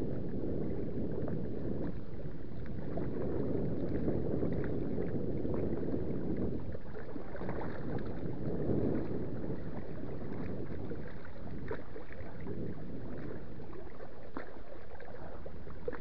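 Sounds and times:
water lapping at kayak hull: 0.0 - 16.0.

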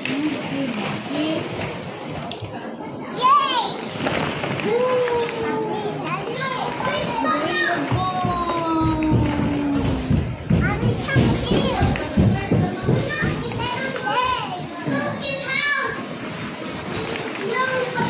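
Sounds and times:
children calling out and chattering: 0.0 - 18.0.

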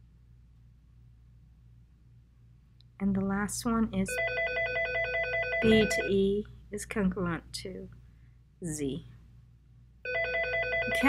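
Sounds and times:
electronic telephone ringing: 4.1 - 6.1, 10.1 - 11.0.

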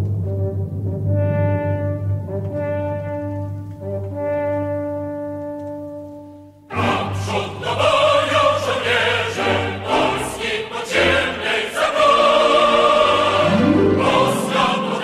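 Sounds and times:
orchestral accompaniment: 0.0 - 15.0
choir singing: 6.7 - 15.0
low rising glide: 6.8 - 15.0.

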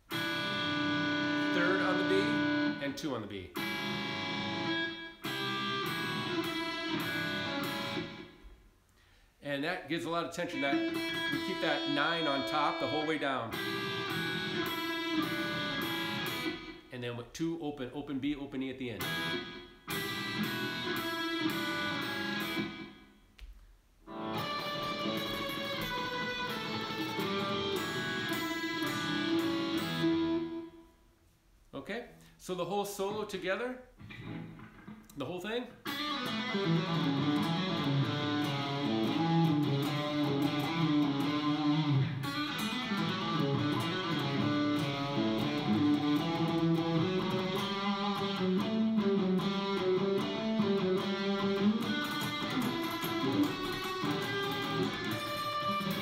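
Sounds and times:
electric guitar double stops: 3.6 - 8.4, 10.6 - 16.8, 19.0 - 22.9, 24.1 - 30.7, 35.9 - 56.0.

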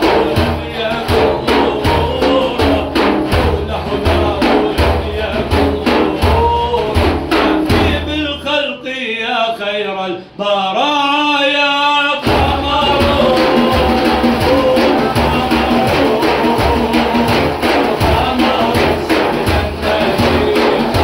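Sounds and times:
frame drums struck by hand: 0.0 - 8.2, 12.2 - 21.0
man singing: 0.0 - 21.0.

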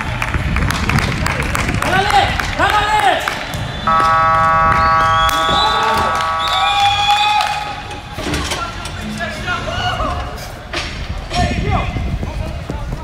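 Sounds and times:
voices: 1.2 - 13.0
electronic buzzer horn: 3.8 - 7.3.

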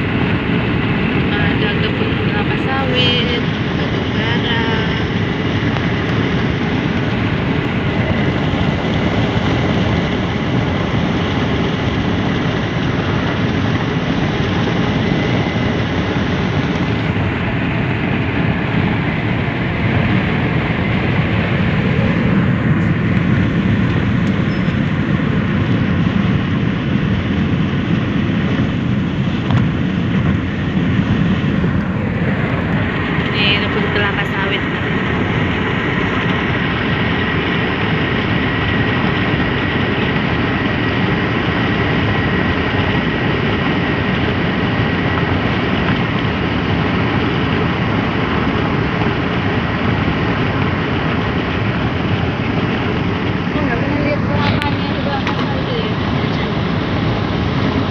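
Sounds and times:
engine drone: 0.0 - 57.9
wind noise: 0.0 - 57.9.

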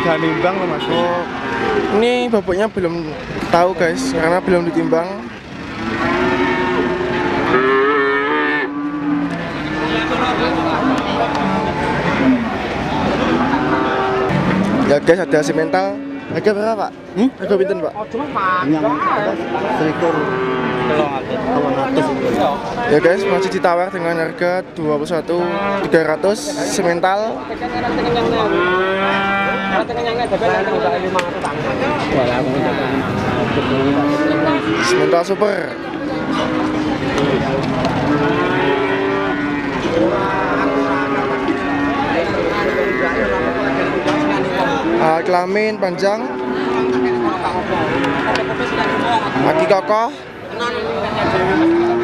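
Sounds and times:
cattle mooing: 0.0 - 30.8, 31.7 - 50.2, 51.1 - 52.0.

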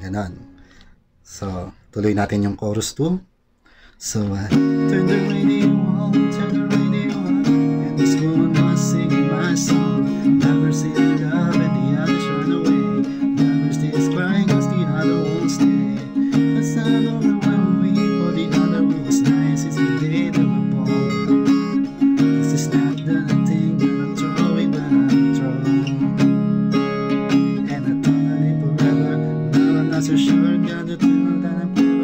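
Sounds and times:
acoustic guitar strummed: 4.5 - 32.0.

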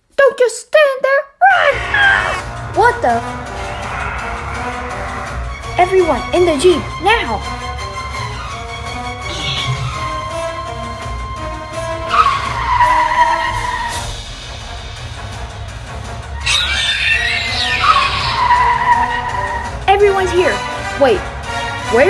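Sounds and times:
background music: 1.4 - 22.0
creature screeches sliding down: 3.6 - 5.4, 16.4 - 19.6.

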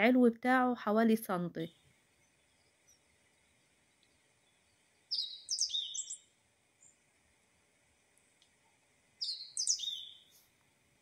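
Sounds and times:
bird chirping: 1.7 - 7.1, 8.7 - 10.5.

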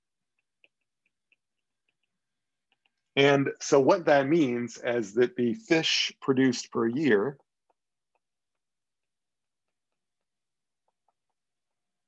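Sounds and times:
stylus tapping on tablet screen: 0.1 - 3.2, 7.0 - 12.0.

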